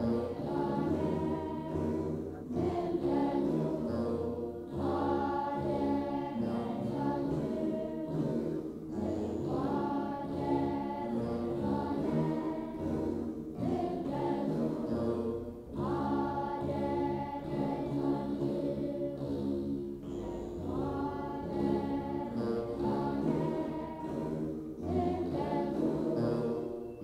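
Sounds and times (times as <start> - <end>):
children's choir singing a hymn: 0.0 - 27.0
lyres playing: 0.0 - 27.0.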